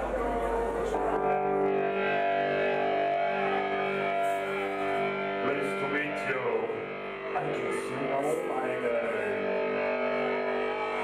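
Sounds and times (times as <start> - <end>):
electric guitar ringing notes: 0.0 - 11.0.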